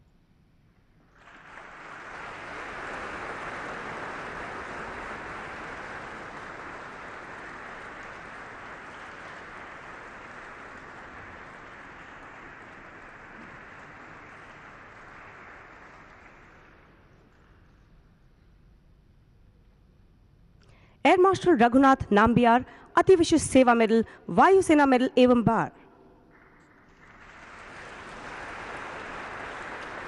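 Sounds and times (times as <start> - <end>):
audience applauding: 1.1 - 17.9, 26.3 - 30.0.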